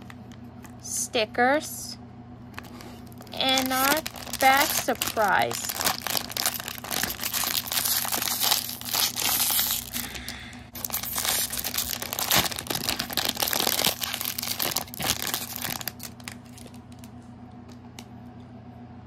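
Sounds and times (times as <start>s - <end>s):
packaging crinkling and tearing: 2.6s - 17.2s.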